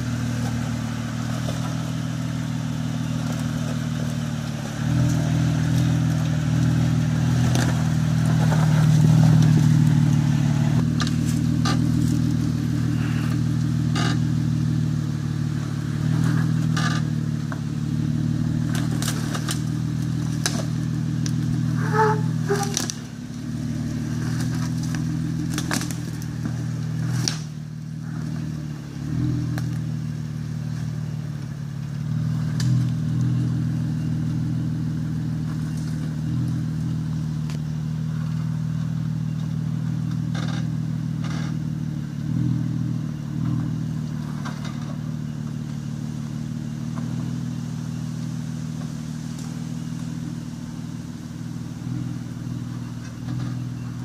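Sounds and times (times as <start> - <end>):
engine running at low revs: 0.0 - 54.0.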